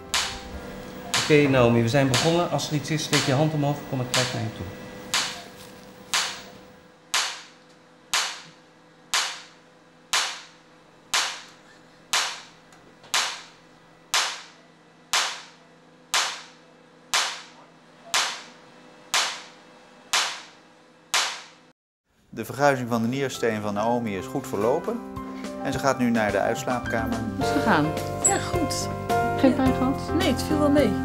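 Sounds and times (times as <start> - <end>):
shock wave sharp snaps: 0.1 - 0.5, 5.1 - 5.4, 6.1 - 6.5, 7.1 - 12.5, 13.1 - 21.7.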